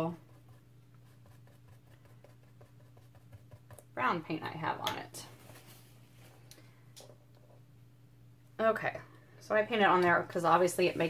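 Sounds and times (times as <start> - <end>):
paintbrush dabbing soft ticks: 0.0 - 3.9
steady low hum: 0.0 - 11.0.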